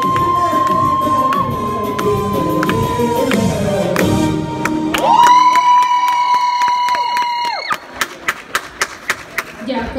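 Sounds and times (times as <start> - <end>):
scattered claps: 4.0 - 9.6.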